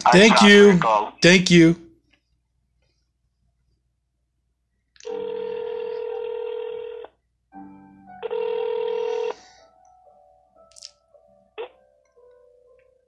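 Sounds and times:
telephone ringback tone: 5.1 - 7.1, 8.2 - 9.4.

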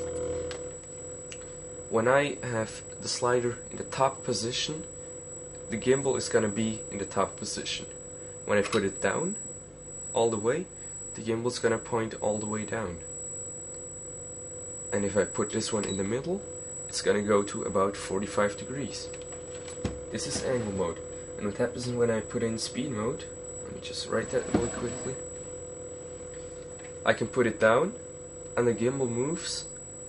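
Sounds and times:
electrical hum: 0.0 - 30.0
faint high-pitched whine: 0.0 - 30.0.

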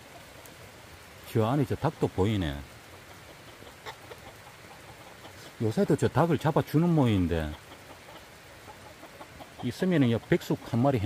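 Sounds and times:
rain hissing: 0.0 - 11.0
chickens clucking: 2.0 - 11.0.

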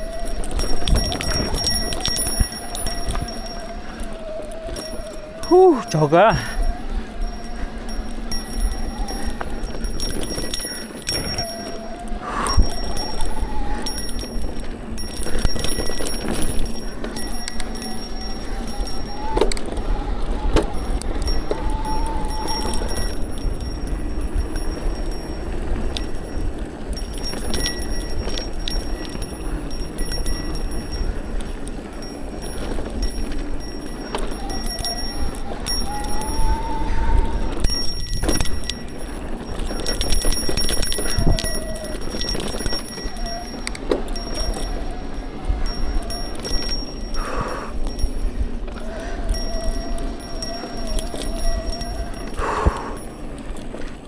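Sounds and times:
faint wavering tone: 0.0 - 31.0, 32.0 - 53.7
bike clicks and rattles: 0.0 - 54.0
mountain bike tyre and drivetrain noise: 0.0 - 54.0.

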